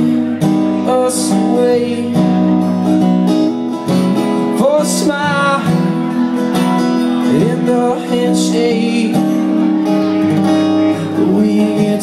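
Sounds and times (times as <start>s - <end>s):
man singing: 0.0s - 3.0s, 4.2s - 12.0s
acoustic guitar strummed: 0.0s - 12.0s.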